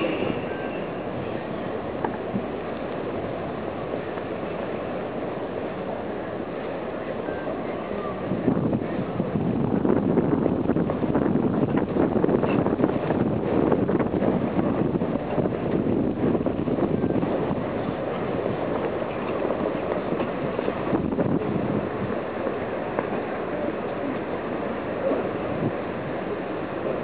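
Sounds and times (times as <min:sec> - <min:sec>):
murmur of outdoor crowd: 0:00.0 - 0:27.0
wind buffeting microphone: 0:00.0 - 0:27.0.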